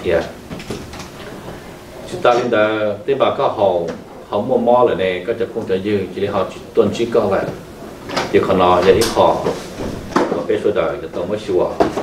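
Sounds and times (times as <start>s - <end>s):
man reading aloud: 0.0s - 0.4s, 2.0s - 12.0s.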